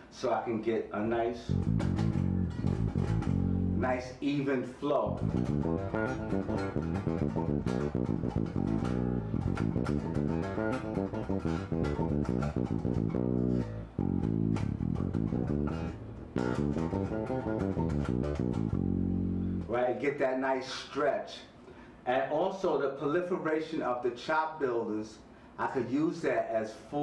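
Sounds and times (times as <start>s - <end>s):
electric bass guitar notes: 1.4s - 4.2s, 5.0s - 19.8s.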